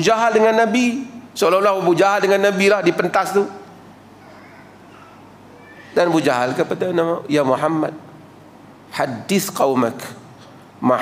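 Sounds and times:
man speaking: 0.0 - 3.7, 5.9 - 8.1, 8.9 - 10.2, 10.8 - 11.0
microphone hiss: 0.0 - 11.0.

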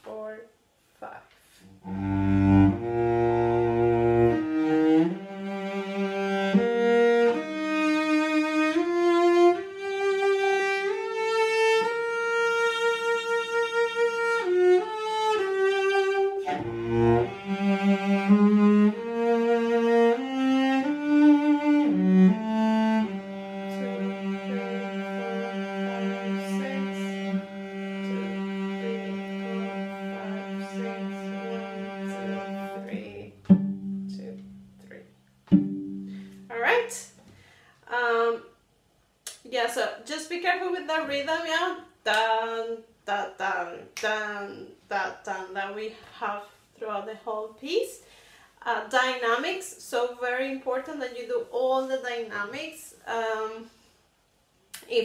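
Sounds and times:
cello bowing slow melody: 1.7 - 36.6.

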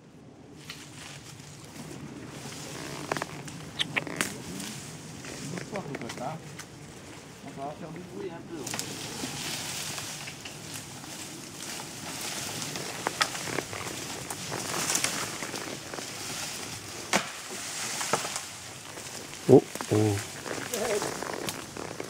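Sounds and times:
leaves rustling: 0.0 - 22.0
twigs snapping: 11.6 - 22.0
person calling out: 19.5 - 21.0.

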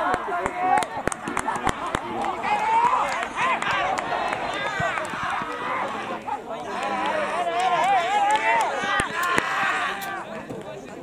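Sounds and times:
young players shouting and cheering: 0.0 - 11.0.

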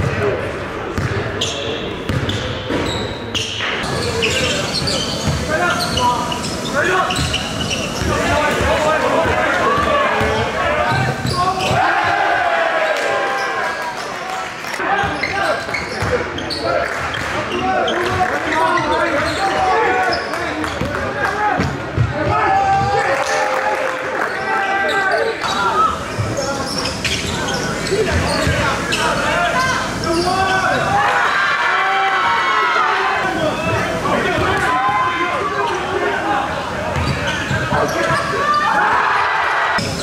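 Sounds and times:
voices echoing in hall: 0.0 - 40.0.

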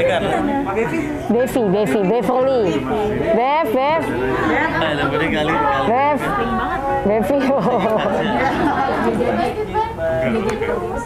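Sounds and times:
overlapping group chatter: 0.0 - 11.0.

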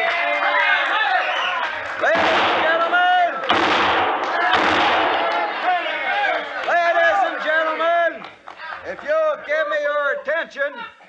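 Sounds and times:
men whooping and shouting: 0.0 - 3.5, 4.3 - 11.0
gunshots: 2.0 - 6.2.

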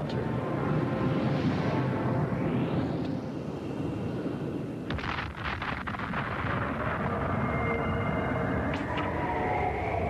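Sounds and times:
crackling explosion blast: 4.9 - 7.8.

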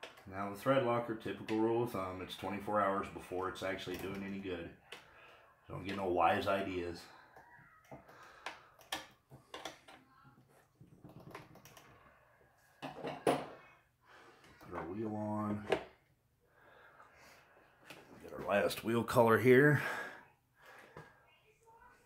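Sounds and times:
man speaking: 5.7 - 7.1, 14.7 - 15.8, 18.2 - 20.2.

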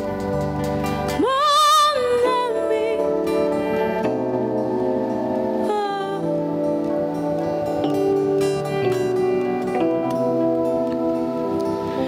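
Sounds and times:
instrumental sustained chords: 0.0 - 12.0
woman singing with vibrato: 1.2 - 4.1, 5.6 - 6.5.

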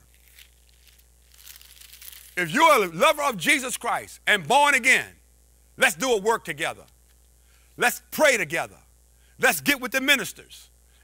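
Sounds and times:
paper rustling and crinkling: 0.0 - 2.4.

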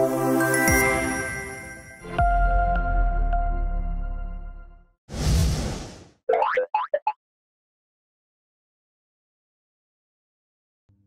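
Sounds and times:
whoosh: 5.1 - 6.2.

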